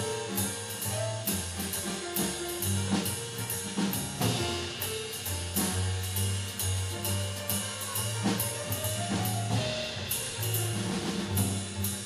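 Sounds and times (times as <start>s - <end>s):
double bass plucked: 0.0s - 12.0s
drum kit snare and cymbal: 0.0s - 12.0s.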